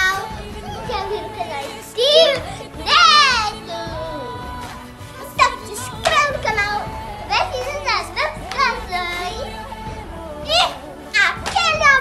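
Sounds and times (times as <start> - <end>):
girls calling out: 0.0 - 9.7
faint background music: 0.0 - 12.0.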